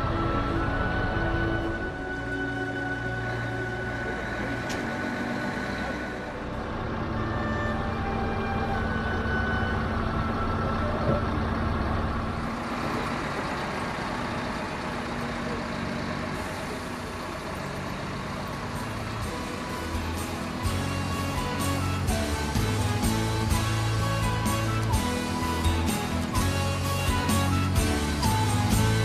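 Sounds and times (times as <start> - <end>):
music: 0.0 - 11.4, 18.8 - 29.0
heavy diesel engine rumbling: 0.0 - 29.0.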